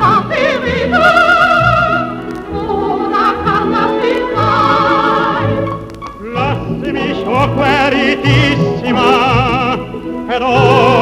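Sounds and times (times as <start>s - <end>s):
operatic tenor singing: 0.0s - 11.0s
orchestral accompaniment: 0.0s - 11.0s.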